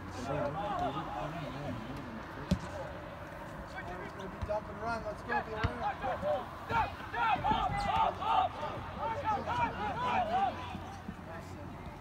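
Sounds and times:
voices shouting and calling: 0.0s - 2.4s, 3.0s - 11.8s
soccer ball kick thump: 2.5s - 2.7s.

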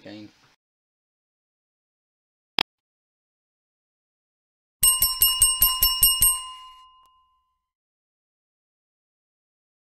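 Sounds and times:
small bell ringing rapidly: 4.8s - 7.5s.

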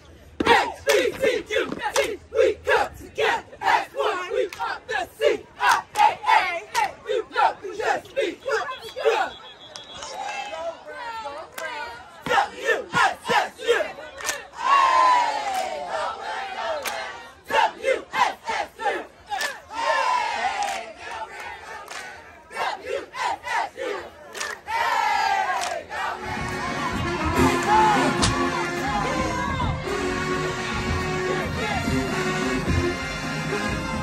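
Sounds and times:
music: 26.2s - 34.0s.

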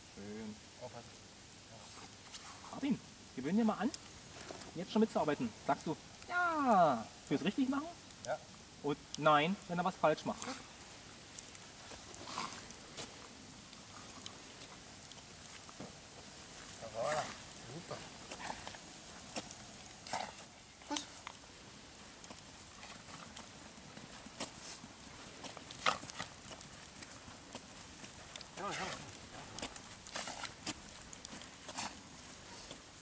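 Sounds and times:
footsteps crunching on frosty ground: 11.5s - 33.0s.

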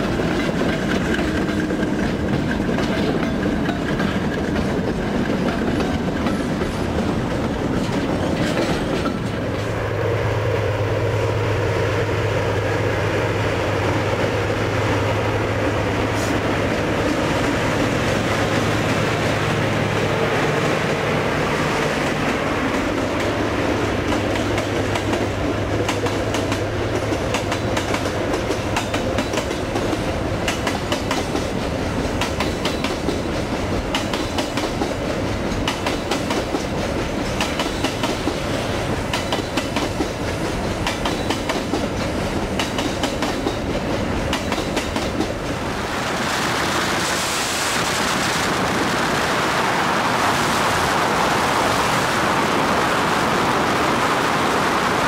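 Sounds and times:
train wheels clattering over rail joints: 0.0s - 9.8s, 21.8s - 48.6s
wind and road rushing noise: 0.0s - 55.0s.

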